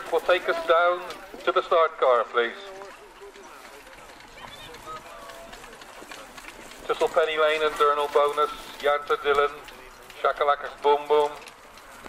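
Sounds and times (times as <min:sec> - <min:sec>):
faint distant voices: 0:00.0 - 0:12.0
hoofbeats of trotting horses on grass: 0:00.0 - 0:12.0
man commentating: 0:06.9 - 0:11.4.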